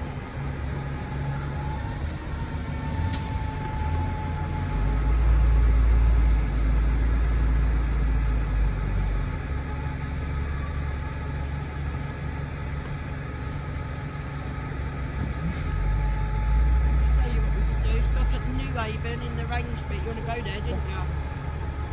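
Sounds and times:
bus engine rumble: 0.0s - 21.9s.

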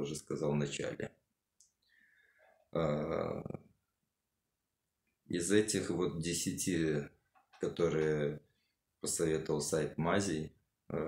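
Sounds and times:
man speaking: 0.0s - 1.3s, 2.7s - 3.8s, 5.3s - 11.0s.

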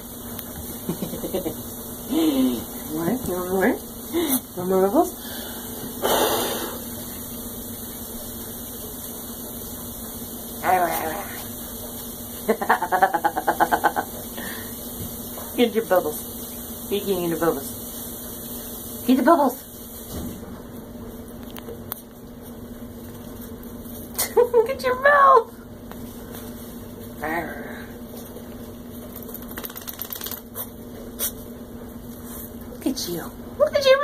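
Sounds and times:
person laughing: 0.8s - 2.4s, 12.5s - 14.2s.

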